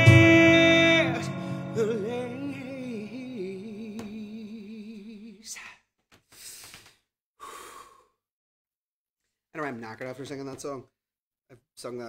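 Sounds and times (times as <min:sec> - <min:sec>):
man sighing: 0:07.4 - 0:08.2.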